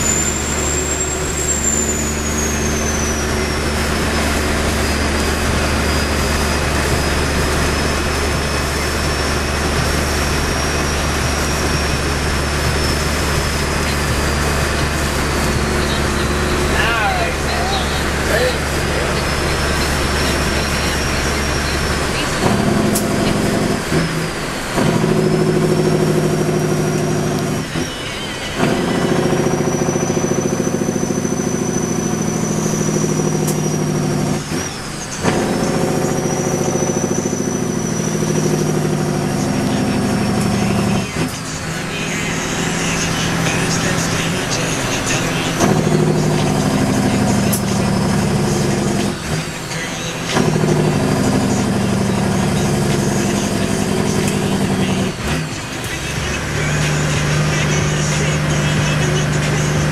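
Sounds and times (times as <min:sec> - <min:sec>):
turbo whistle: 0:00.0 - 0:41.3
diesel truck engine accelerating: 0:00.0 - 0:59.9.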